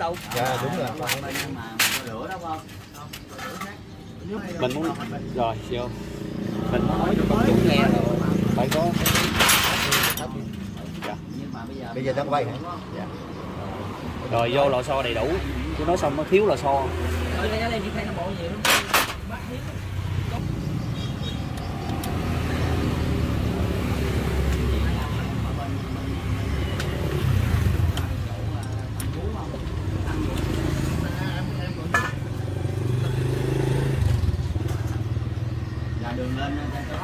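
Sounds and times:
indistinct voices: 0.0 - 37.0.

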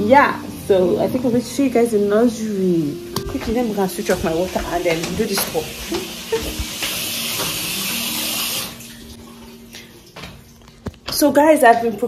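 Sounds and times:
tap water running: 0.0 - 12.0.

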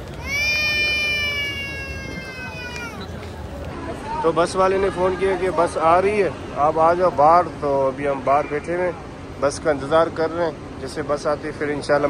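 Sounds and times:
long high drawn-out call: 0.2 - 3.2.

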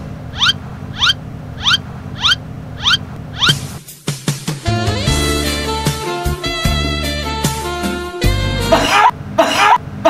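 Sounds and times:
short rising chirp: 0.3 - 3.7.

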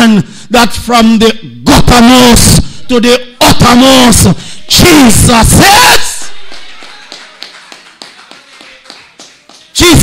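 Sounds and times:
shouted word echoing: 0.0 - 6.5, 9.7 - 10.0.

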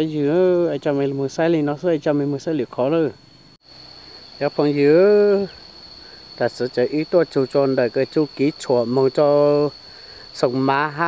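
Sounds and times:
insects droning: 0.0 - 11.0
person talking: 4.4 - 5.6, 6.4 - 11.0.

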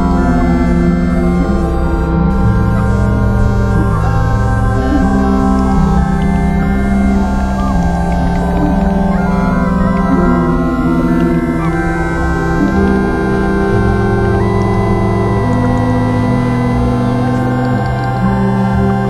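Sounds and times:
low bass drone: 0.0 - 19.0
synthesizer held notes: 0.0 - 19.0.

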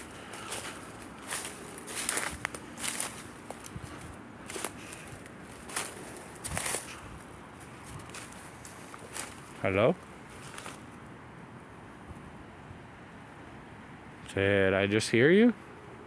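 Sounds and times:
footsteps through dry leaves: 0.0 - 10.9.

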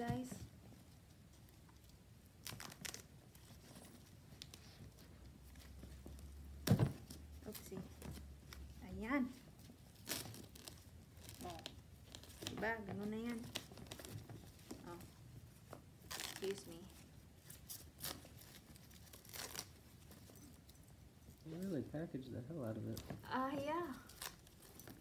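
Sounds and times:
plastic wrapping crinkling and tearing: 2.3 - 5.1, 9.6 - 20.6, 22.7 - 25.0.

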